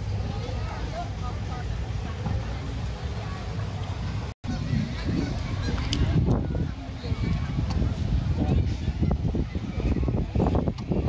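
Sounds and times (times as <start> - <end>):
faint voices: 0.0 - 11.0
wind buffeting microphone: 3.9 - 11.0.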